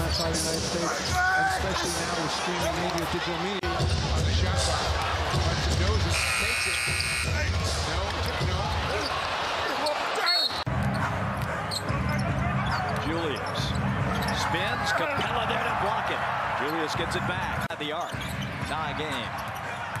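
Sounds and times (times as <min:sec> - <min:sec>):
crowd noise: 0:00.0 - 0:20.0.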